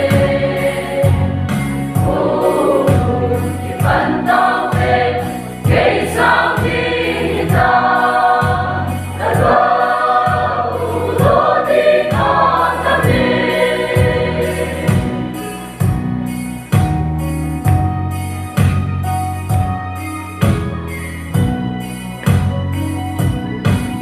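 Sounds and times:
mixed choir singing a hymn: 0:00.0 - 0:15.8
low accompaniment: 0:00.0 - 0:24.0.

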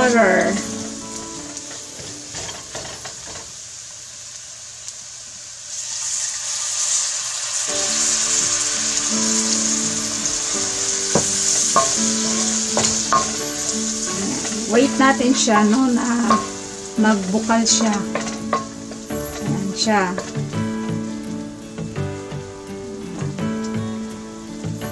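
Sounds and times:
loud steady sizzle: 0:00.0 - 0:24.9
spatula stirring in a wok: 0:10.8 - 0:21.0
spatula knocking on pan: 0:11.1 - 0:13.7, 0:14.4 - 0:16.7, 0:17.7 - 0:19.6.

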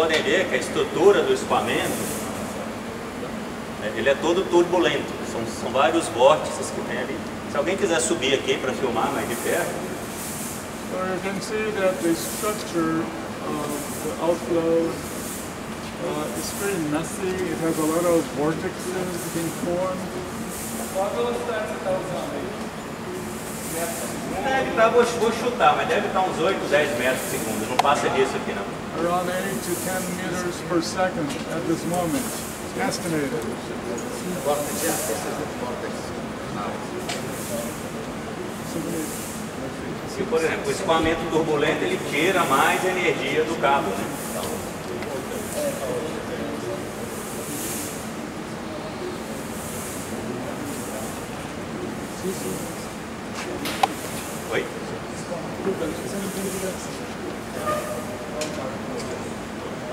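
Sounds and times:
people talking: 0:00.0 - 0:10.1, 0:10.8 - 0:15.2, 0:15.8 - 0:59.9.

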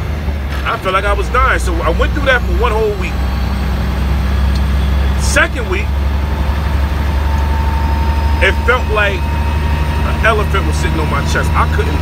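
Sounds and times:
diesel engine drone: 0:00.0 - 0:12.0.

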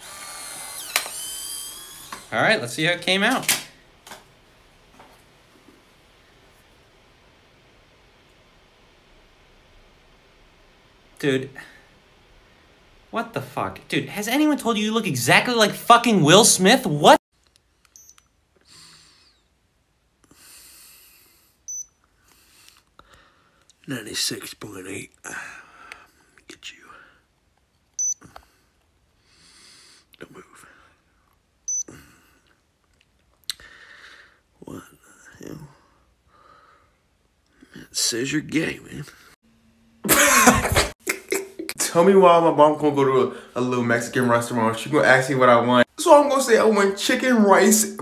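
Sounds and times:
instant camera motor whirring: 0:00.0 - 0:02.3
thermometer beep: 0:18.0 - 0:18.3, 0:21.7 - 0:21.9, 0:28.0 - 0:28.2, 0:31.7 - 0:31.9.

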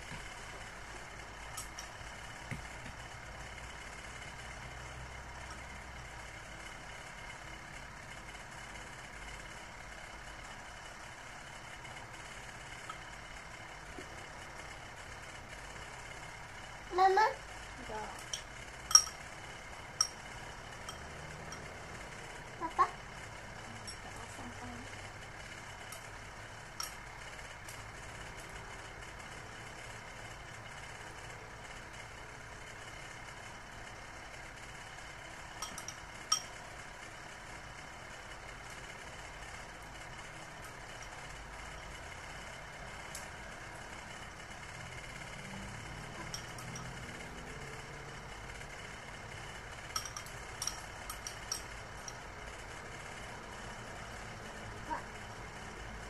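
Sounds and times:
low background hum: 0:00.0 - 0:56.0
spoon clinking on ceramic bowl: 0:18.3 - 0:19.2, 0:35.6 - 0:36.5, 0:46.2 - 0:47.0, 0:50.0 - 0:52.2.

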